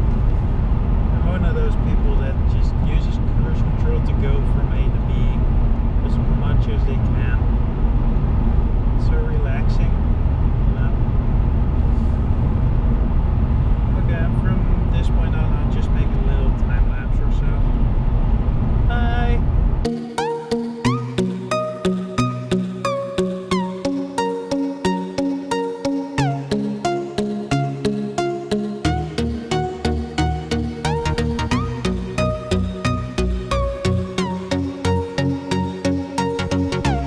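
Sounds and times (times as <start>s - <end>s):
car engine and tyre drone: 0.0s - 37.0s.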